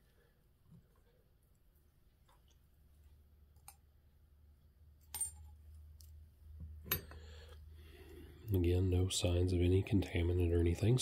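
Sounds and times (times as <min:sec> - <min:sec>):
metal parts clicking and clinking: 0:05.0 - 0:06.1, 0:06.8 - 0:07.2.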